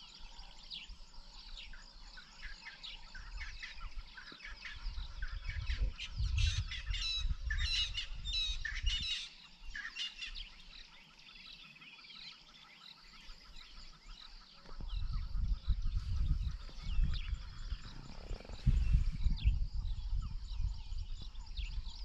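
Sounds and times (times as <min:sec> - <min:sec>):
birds chirping: 0:00.0 - 0:22.0.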